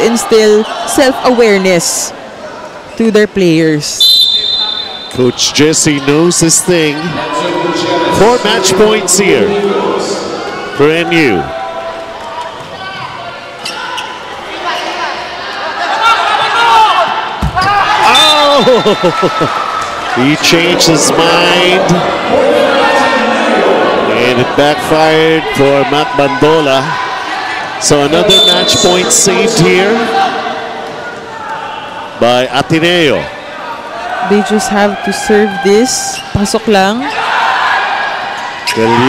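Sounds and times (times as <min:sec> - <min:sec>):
crowd noise: 0:00.0 - 0:39.0
volleyball bouncing on court floor: 0:17.4 - 0:17.8.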